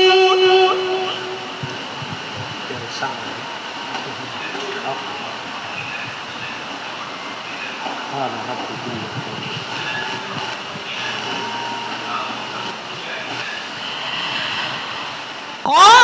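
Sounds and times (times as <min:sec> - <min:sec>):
faint voices talking: 0:00.0 - 0:16.0
steady hissing noise: 0:00.0 - 0:16.0.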